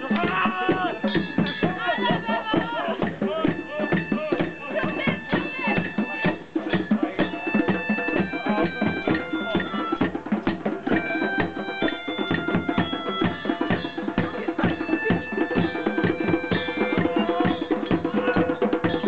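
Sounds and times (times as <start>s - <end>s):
hand drums fast rhythm: 0.0s - 19.0s
high held notes: 0.0s - 19.0s.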